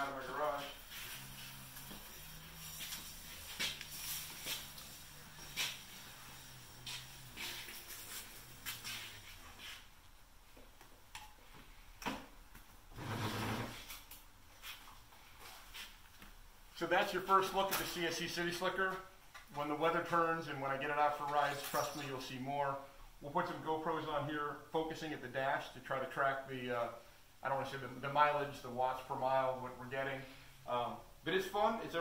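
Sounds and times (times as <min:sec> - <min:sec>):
faint electric motor hum: 0:00.0 - 0:10.4.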